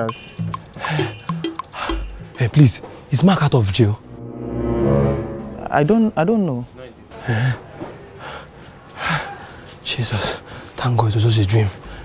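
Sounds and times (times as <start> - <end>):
man gasping: 0.8 - 2.1.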